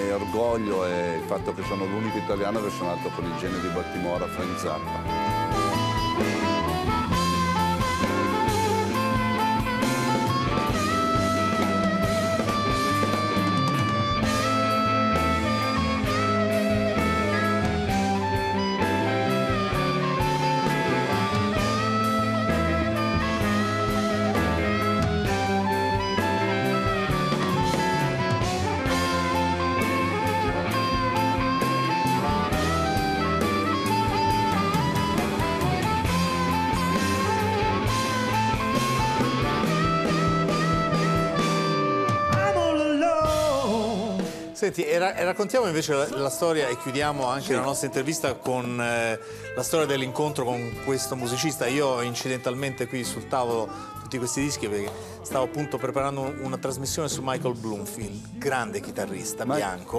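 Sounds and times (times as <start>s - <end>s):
amplified harmonica: 0.0s - 44.6s, 45.4s - 59.9s
bass guitar: 0.0s - 59.9s
drums: 0.0s - 59.9s
electric guitar: 0.0s - 59.9s.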